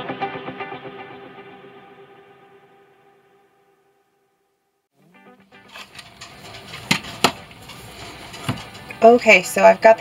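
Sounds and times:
background music: 0:00.0 - 0:04.0, 0:04.9 - 0:10.0.

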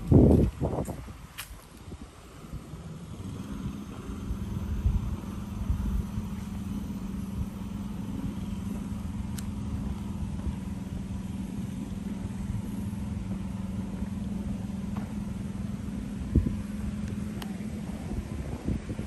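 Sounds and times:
low hum: 0:00.0 - 0:19.0
low rumble: 0:00.0 - 0:19.0.

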